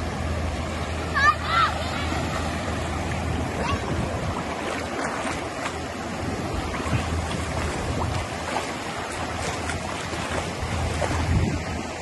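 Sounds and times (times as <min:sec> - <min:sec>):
ocean surf washing: 0:00.0 - 0:12.0
wind rumbling on microphone: 0:02.2 - 0:12.0.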